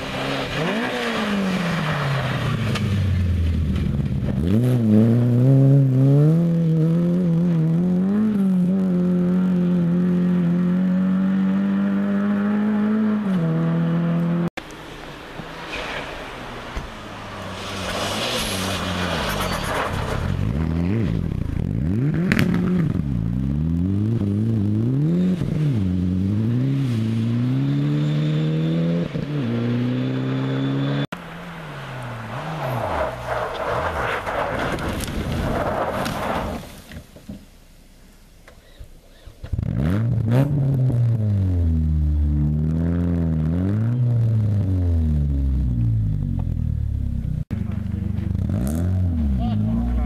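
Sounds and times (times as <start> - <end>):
tyres scraping in snow and gravel: 0.0 - 5.4, 14.7 - 23.2, 25.0 - 37.2
rally car engine revving: 0.0 - 36.6, 39.4 - 50.0
rough car engine: 0.0 - 50.0
rush of thrown snow: 32.3 - 36.9.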